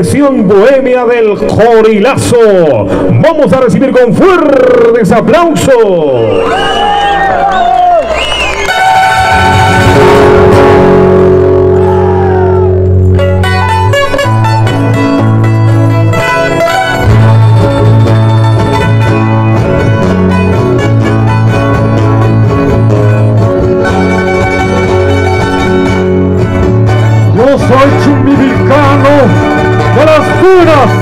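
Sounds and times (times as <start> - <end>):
string band playing folk tune: 13.0 - 31.0.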